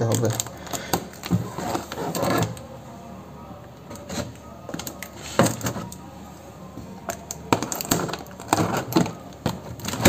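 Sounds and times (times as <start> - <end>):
packing tape crackling: 0.0 - 2.8, 3.8 - 6.1, 6.9 - 10.0.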